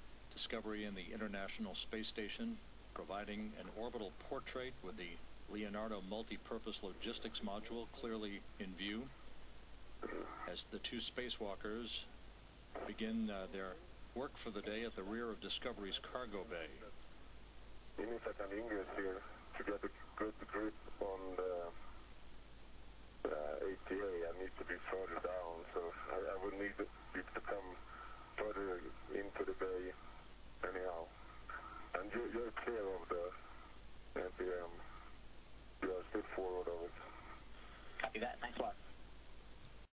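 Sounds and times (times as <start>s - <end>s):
person talking over radio: 10.0s - 12.0s, 12.8s - 16.9s, 18.0s - 21.7s, 23.3s - 27.8s, 28.4s - 29.9s, 30.6s - 33.3s, 34.2s - 34.8s, 35.8s - 37.1s
person speaking over radio: 18.0s - 21.7s.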